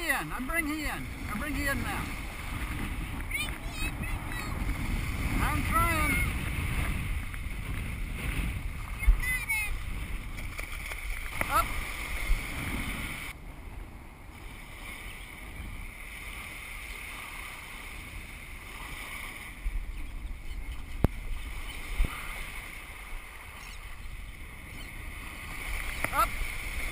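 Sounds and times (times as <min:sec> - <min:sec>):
small waves washing: 0:00.0 - 0:26.9
wind on microphone: 0:00.0 - 0:26.9.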